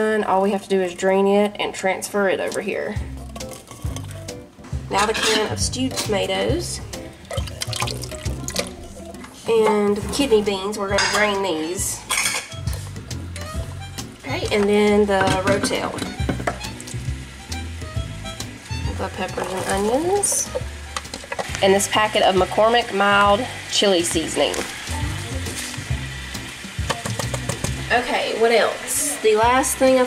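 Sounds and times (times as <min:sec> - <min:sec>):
background music: 0:00.0 - 0:30.0
kitchen clatter and clinks: 0:03.2 - 0:04.3, 0:04.9 - 0:06.3, 0:10.9 - 0:12.6, 0:15.1 - 0:16.6, 0:19.4 - 0:21.6
meat sizzling in a pan: 0:15.8 - 0:30.0.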